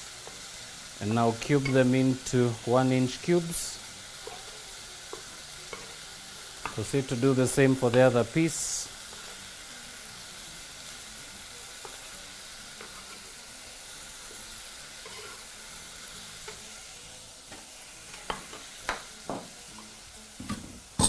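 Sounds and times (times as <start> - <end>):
meat and onions sizzling: 0.0 - 21.0.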